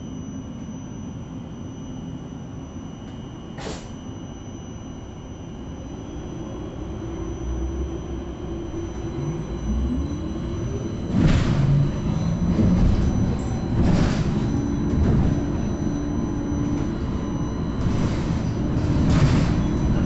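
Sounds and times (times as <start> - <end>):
bus drive rumbling and whining: 3.0 - 4.0, 5.6 - 20.0.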